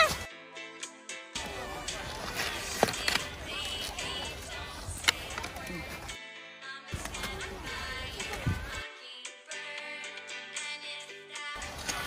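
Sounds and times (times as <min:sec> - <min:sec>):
music with held notes: 0:00.0 - 0:12.0
crowd chatter: 0:01.4 - 0:06.2, 0:06.9 - 0:08.8, 0:11.6 - 0:12.0.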